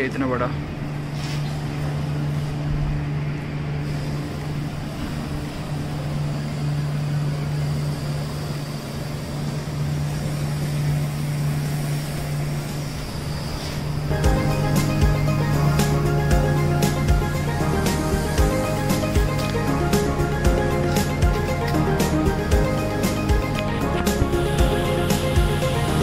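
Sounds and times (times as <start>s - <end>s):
factory machinery drone: 0.0s - 26.0s.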